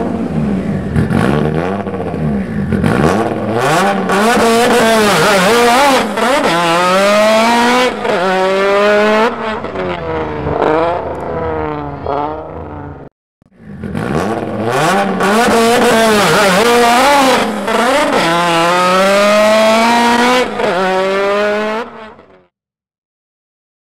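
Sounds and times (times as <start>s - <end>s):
turbocharged drag car engine revving: 0.0s - 12.8s, 13.5s - 22.4s.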